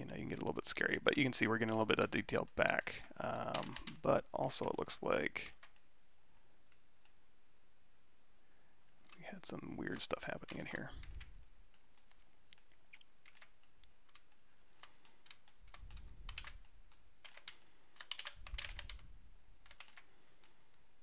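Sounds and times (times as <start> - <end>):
computer keyboard clicking: 1.6 - 2.6, 3.5 - 4.0, 9.9 - 20.6.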